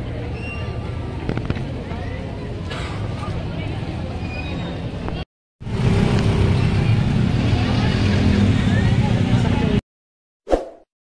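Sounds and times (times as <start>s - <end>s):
crowd chatter: 0.0s - 5.2s, 6.2s - 9.8s
motorcycle and scooter engines: 0.0s - 9.8s.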